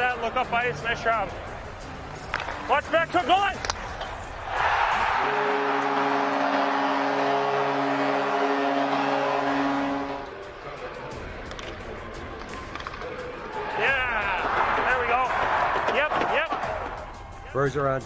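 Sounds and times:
ice hockey game sound: 0.0 - 17.6
players shouting excitedly: 4.6 - 9.8.

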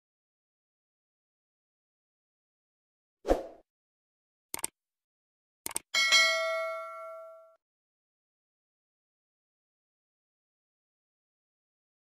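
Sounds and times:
notification bell chime: 6.0 - 7.6.

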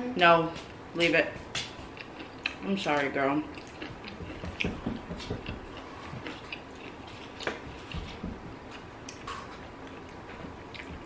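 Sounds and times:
close chewing mouth sounds: 1.6 - 11.0.

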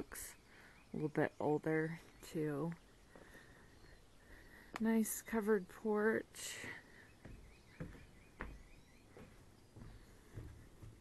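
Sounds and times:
footsteps on wooden steps: 2.7 - 5.0, 6.4 - 11.0
high bird chirps: 6.8 - 10.5.

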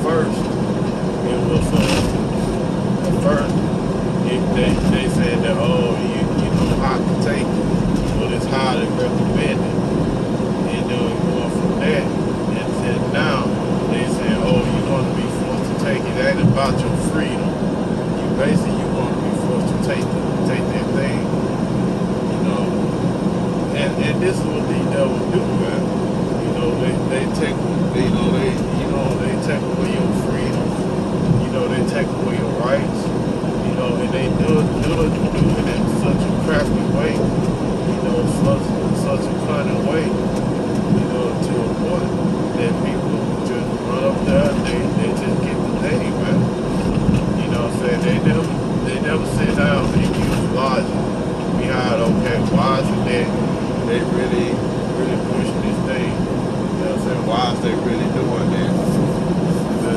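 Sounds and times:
road noise: 0.0 - 59.9
truck engine drone: 0.0 - 59.9.

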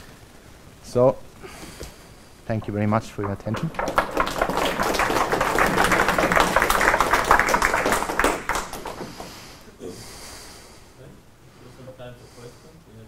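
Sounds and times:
audience applauding: 2.6 - 9.6.

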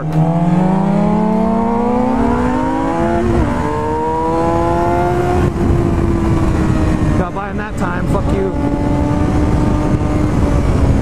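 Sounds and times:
motorcycle engine accelerating: 0.0 - 11.0
wind rush: 0.0 - 11.0.

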